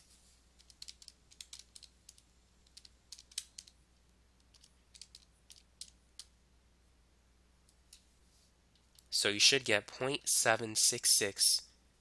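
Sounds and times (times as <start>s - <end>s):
faint low hum: 0.0s - 12.0s
keys clicking: 0.6s - 3.8s, 4.5s - 6.3s.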